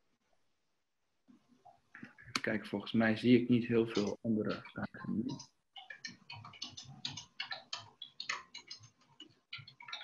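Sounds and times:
keyboard typing: 3.8 - 10.0.

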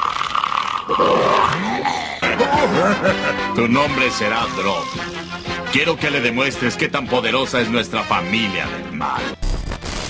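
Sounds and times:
rough drawn-out vocal cry: 0.0 - 3.6.

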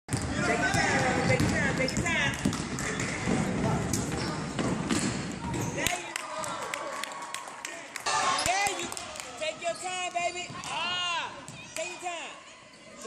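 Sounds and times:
basketball bouncing on hardwood: 0.1 - 5.7
sneakers squeaking: 0.1 - 6.0, 9.6 - 11.8
voices echoing: 0.1 - 13.0.

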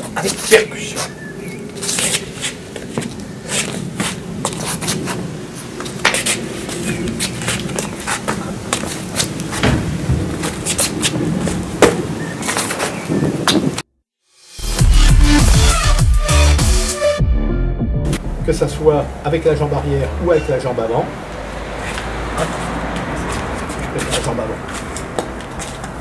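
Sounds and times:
footsteps scuffing on flagstones: 0.0 - 13.6, 21.8 - 26.0.

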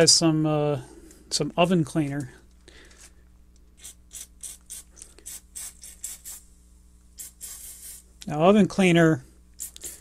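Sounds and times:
aerosol spray hissing spurts: 3.8 - 6.5, 7.2 - 8.1, 9.6 - 10.0.

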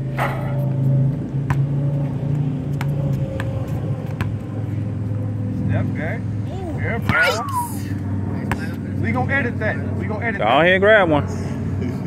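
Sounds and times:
basketball hitting rim and bouncing: 0.1 - 4.6.

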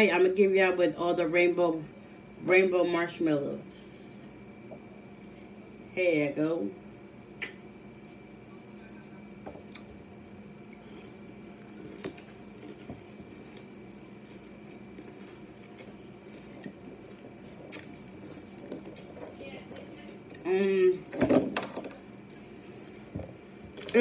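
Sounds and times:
faint steady hum: 0.0 - 24.0
chewing crunchy cereal: 10.7 - 20.4.

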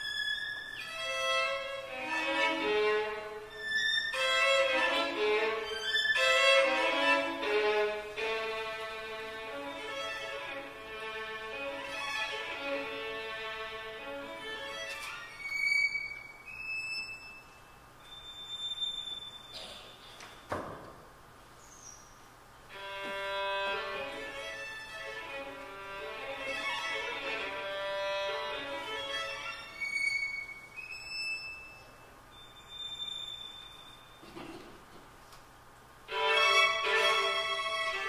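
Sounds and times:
scratchy violin bow stroke: 0.0 - 17.5, 22.7 - 32.0, 36.1 - 38.0
solo violin high notes: 0.0 - 17.6, 36.1 - 38.0
violin high held notes: 36.1 - 38.0.

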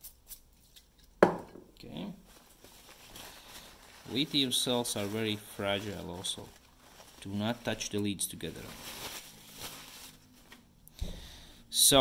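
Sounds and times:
paper towel rustling: 2.2 - 10.7.

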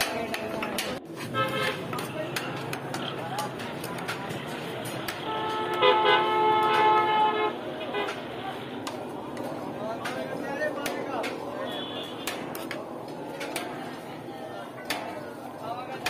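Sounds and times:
vehicle horn honking: 1.3 - 1.8, 5.2 - 8.2, 11.6 - 12.3.

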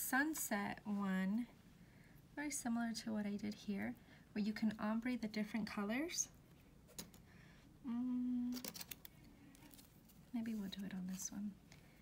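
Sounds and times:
woman humming: 7.8 - 8.8.

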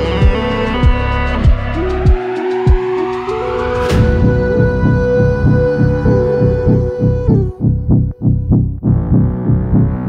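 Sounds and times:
dark electronic dance music: 0.0 - 10.0
bare bass hits: 3.9 - 10.0.

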